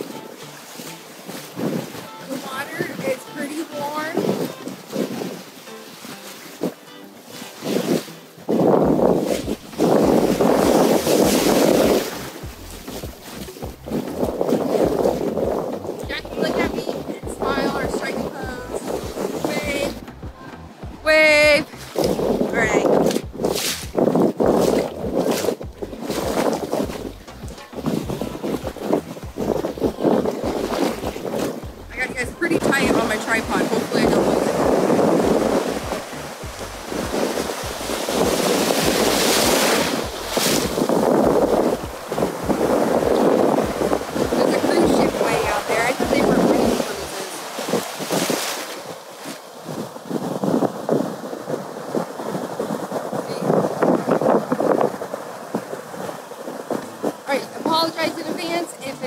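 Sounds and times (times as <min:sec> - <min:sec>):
ocean surf breaking: 0:00.0 - 0:59.0
wind buffeting microphone: 0:00.0 - 0:59.0.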